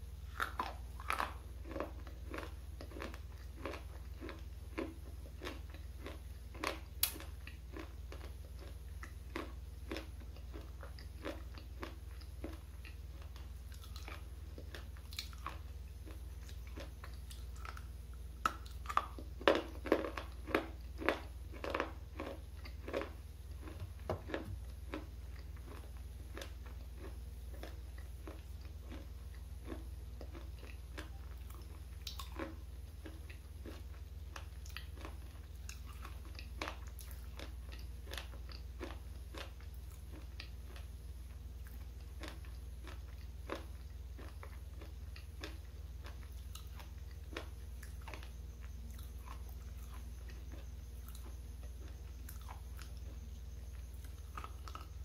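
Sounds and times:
chewing: 0.3 - 55.0.

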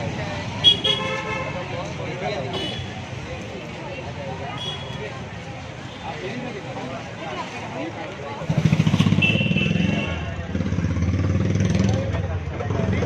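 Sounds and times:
street chatter: 0.0 - 13.0.

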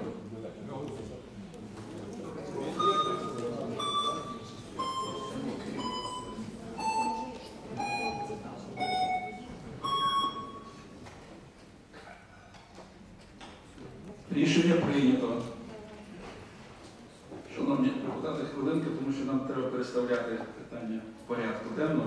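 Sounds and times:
murmur of voices in a hall: 0.0 - 22.0
electronic timer beeping: 2.8 - 10.8.

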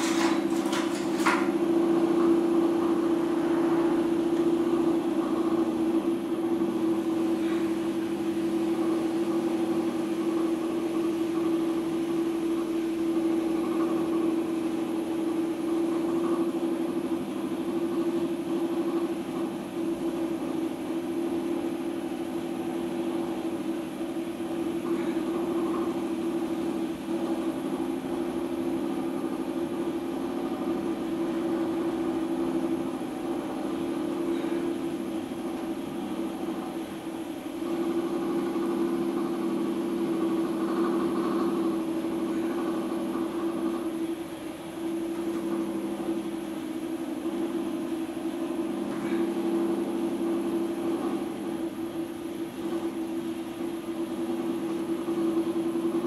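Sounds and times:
potter's wheel motor humming: 0.0 - 56.0.

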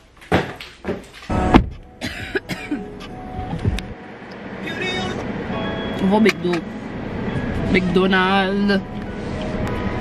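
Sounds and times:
car noise: 0.0 - 10.0
woman clearing her throat: 2.0 - 2.8
woman coughing: 2.0 - 2.9.

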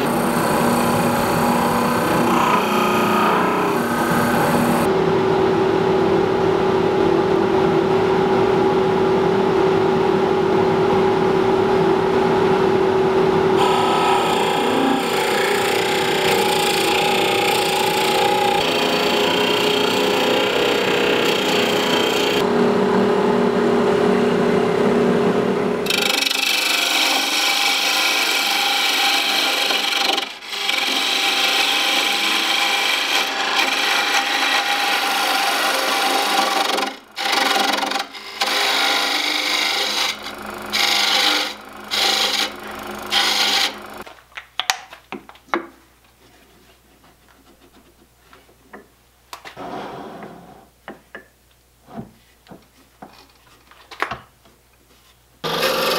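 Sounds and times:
drill bit boring into wood: 0.0 - 4.9, 13.6 - 22.4, 25.9 - 44.0
gouge scraping spinning wood: 0.0 - 4.9, 13.6 - 22.5, 25.8 - 44.0
lathe motor hum: 0.0 - 4.9, 13.6 - 22.5, 25.8 - 44.0.

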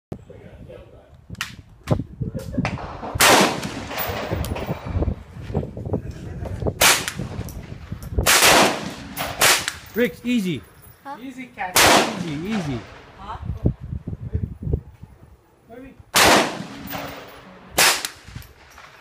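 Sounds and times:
rifle gunshots echoing: 2.8 - 4.9, 8.2 - 9.9, 11.7 - 13.2, 16.1 - 19.0.

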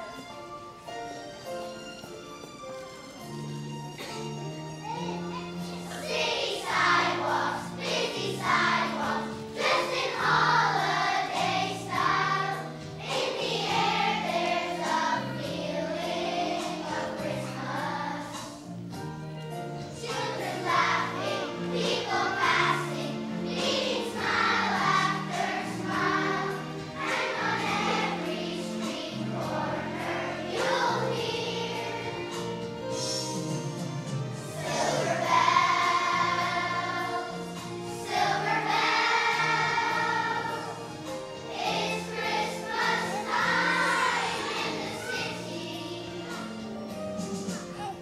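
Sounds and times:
children's choir singing: 0.0 - 4.3, 5.1 - 48.0
instrumental accompaniment: 0.0 - 48.0.

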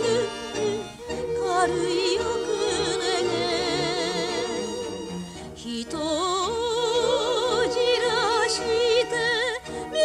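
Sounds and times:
orchestral accompaniment: 0.0 - 10.0
woman singing operatically: 0.0 - 10.0.

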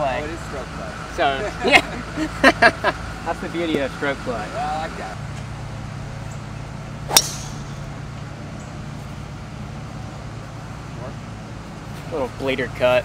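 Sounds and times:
steady low hum: 3.9 - 13.0
golf club striking ball: 7.0 - 8.0.

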